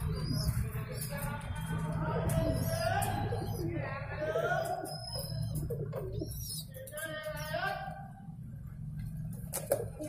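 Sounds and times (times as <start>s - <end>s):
pigeons cooing: 0.0s - 6.8s, 9.4s - 10.0s
birds chirping: 0.0s - 10.0s.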